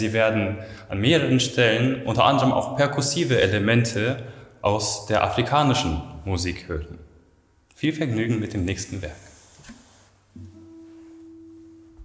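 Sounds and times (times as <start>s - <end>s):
classical guitar note ringing: 10.4s - 12.0s.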